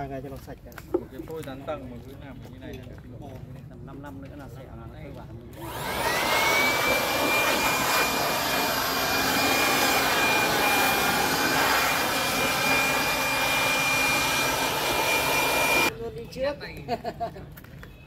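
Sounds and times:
electric blower whining: 0:05.6 - 0:15.9
rushing air: 0:05.6 - 0:15.9.

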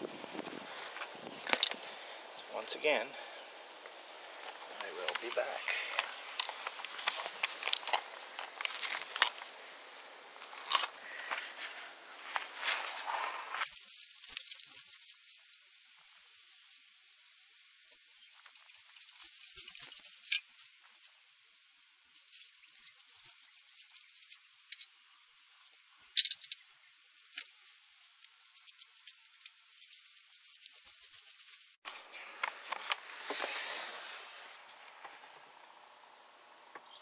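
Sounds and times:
quiet high hiss: 0:00.0 - 0:37.0.

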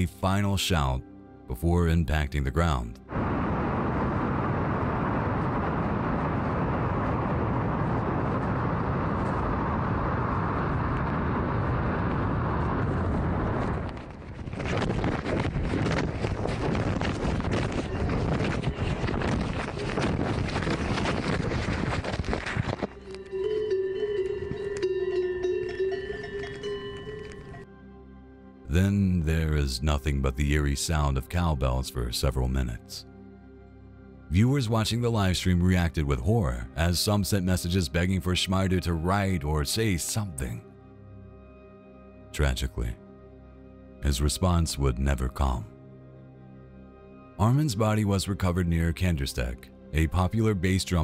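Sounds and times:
wind rushing over phone: 0:03.1 - 0:23.2
cowbells ringing: 0:23.1 - 0:27.7.

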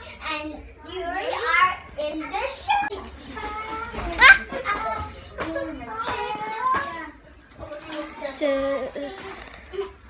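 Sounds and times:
girls talking and exclaiming: 0:00.0 - 0:10.0.

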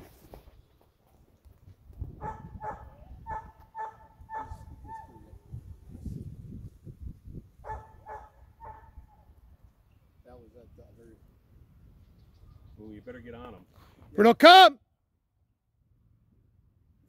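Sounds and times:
wind rumble on microphone: 0:01.6 - 0:09.7
dog barking: 0:02.2 - 0:05.2, 0:07.6 - 0:09.3.

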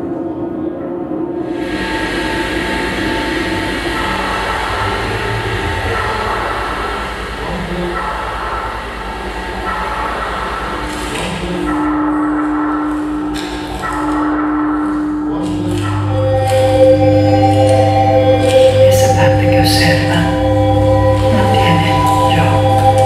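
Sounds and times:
sustained drone tones: 0:00.0 - 0:23.0
low rumble and hiss: 0:00.3 - 0:13.4
strong low tone: 0:01.4 - 0:13.9.

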